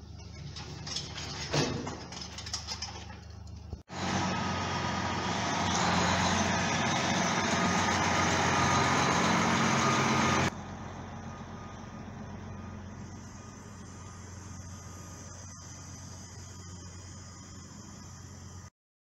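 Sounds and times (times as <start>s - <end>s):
truck diesel engine running: 3.9s - 15.8s.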